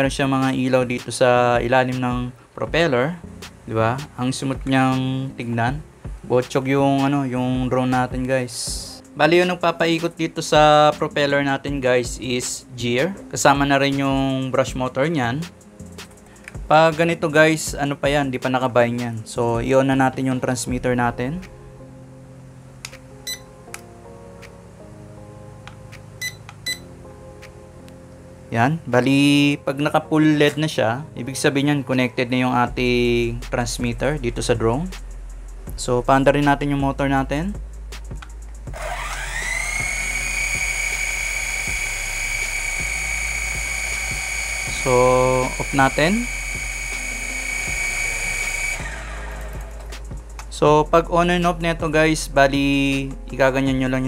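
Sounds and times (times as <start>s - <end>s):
background music: 0.0s - 54.0s
remote control beeps: 26.2s - 26.8s
toy drone motors whining: 38.7s - 49.9s.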